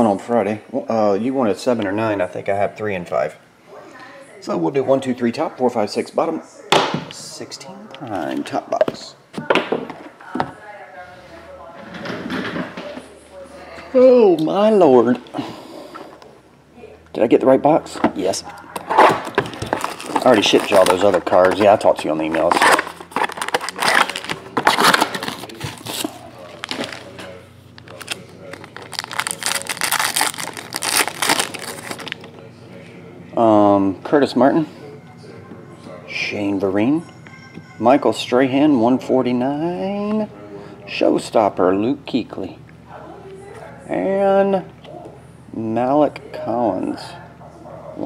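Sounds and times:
plastic wrapper crinkling and tearing: 0:19.0 - 0:32.3
cardboard box opening: 0:22.3 - 0:27.0.

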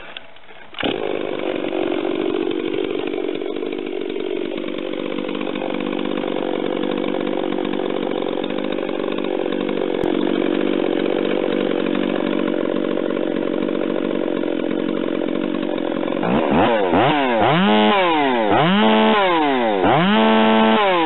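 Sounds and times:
chainsaw engine revving high: 0:00.0 - 0:21.0.

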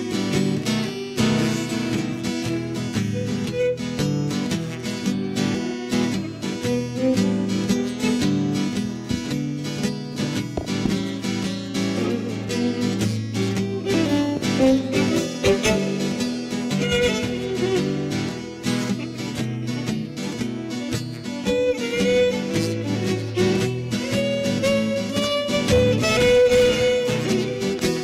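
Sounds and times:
strummed acoustic guitar music: 0:00.0 - 0:28.0.

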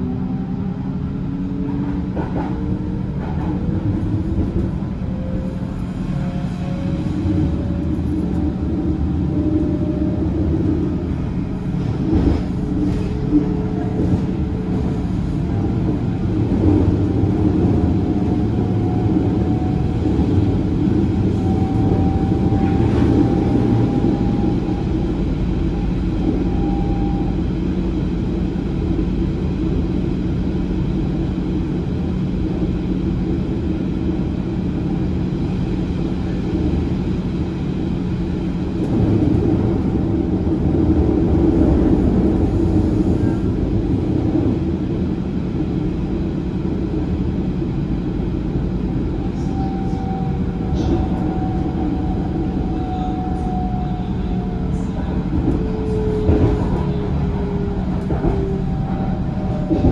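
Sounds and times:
train car running on track: 0:00.0 - 0:59.9.

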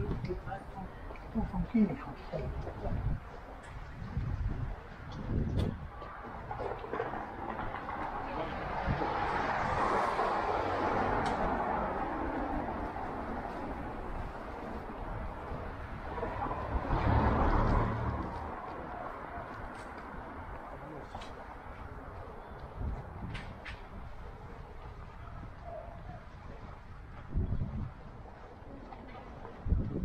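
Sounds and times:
heavy vehicle rumbling past: 0:06.5 - 0:19.3
vehicle driving past: 0:07.1 - 0:14.8, 0:15.4 - 0:19.7.

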